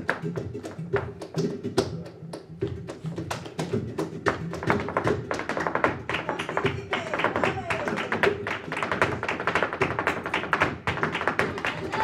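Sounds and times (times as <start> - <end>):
flamenco guitar: 0.0 - 12.0
shoes striking wooden stage: 2.6 - 12.0.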